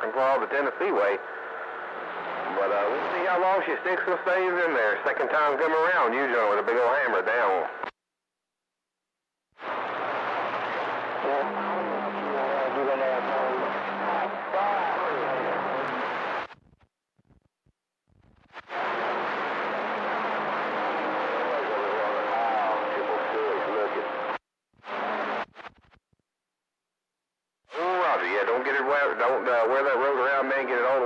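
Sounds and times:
garbled radio voices: 0.0s - 1.5s, 2.4s - 7.8s, 11.1s - 16.6s, 18.5s - 25.7s
radio static: 0.0s - 7.9s, 9.6s - 17.5s, 18.1s - 26.0s, 27.7s - 31.0s.

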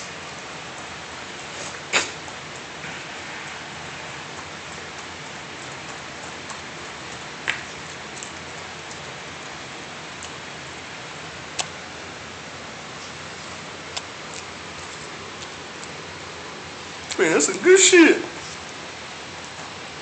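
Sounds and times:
steady hiss: 0.0s - 20.0s.

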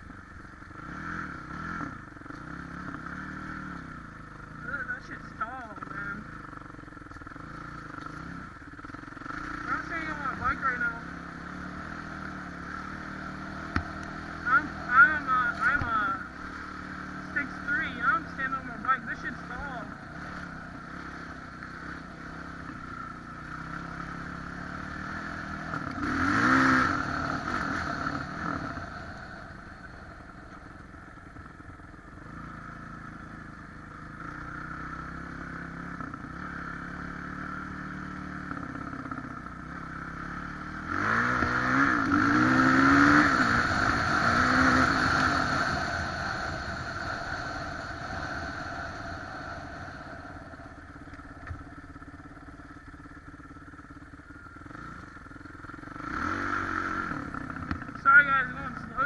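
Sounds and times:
dirt bike engine revving: 0.0s - 30.8s, 32.2s - 59.0s.

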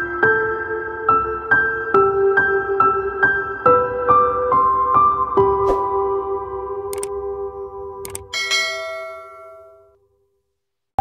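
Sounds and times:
bright bell ding: 8.4s - 9.9s.

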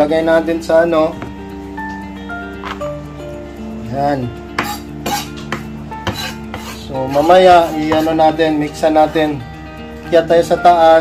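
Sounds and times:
quiet background music: 0.0s - 11.0s
knife chopping on wooden board: 4.6s - 8.3s.

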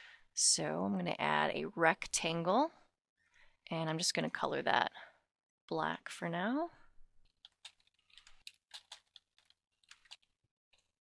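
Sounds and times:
computer keyboard typing: 7.4s - 10.3s.

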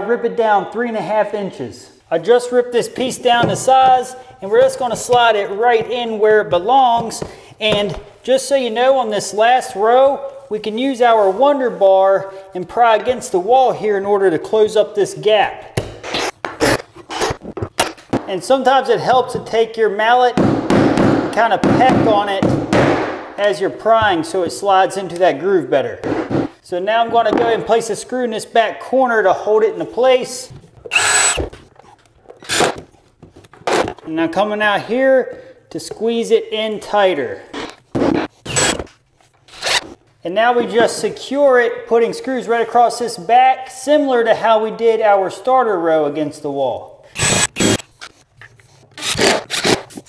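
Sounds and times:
sharp knocks: 20.4s - 23.4s.

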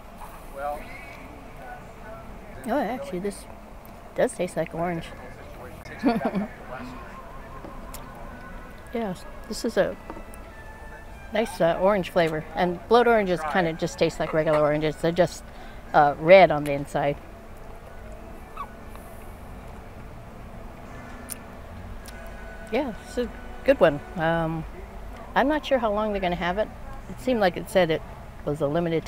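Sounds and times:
low steady hum: 0.0s - 29.0s
woman laughing: 6.0s - 6.6s
straw squeak: 18.4s - 18.9s.

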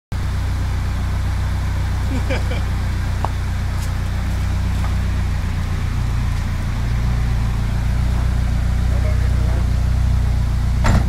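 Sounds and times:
car engine idling: 0.1s - 11.0s.

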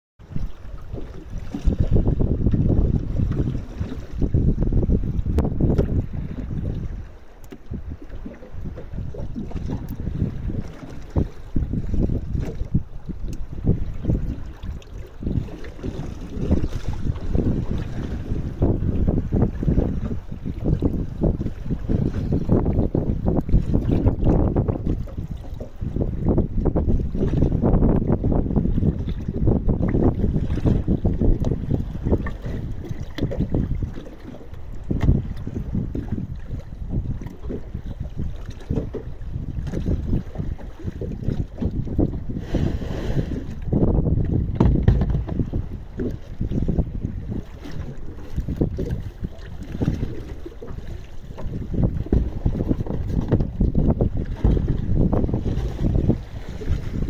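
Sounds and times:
wind buffeting microphone: 0.2s - 57.0s.

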